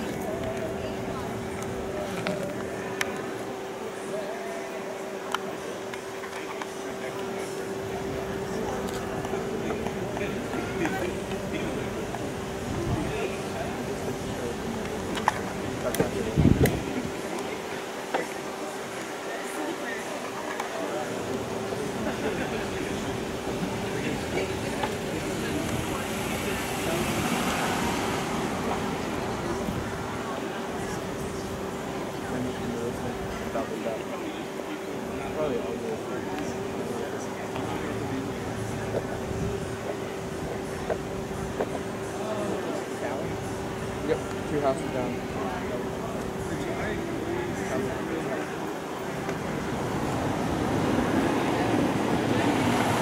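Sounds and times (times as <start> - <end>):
distant people talking: 0.0 - 53.0
murmur of voices: 0.0 - 53.0
steady hum: 0.0 - 53.0.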